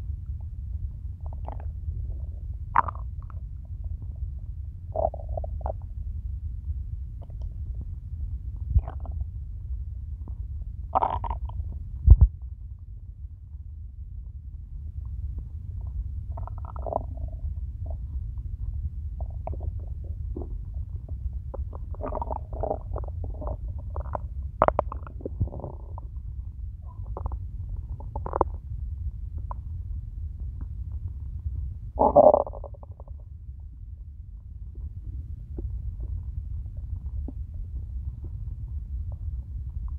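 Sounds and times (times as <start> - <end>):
low rumble: 0.0 - 39.9
stomach growling: 0.0 - 39.9.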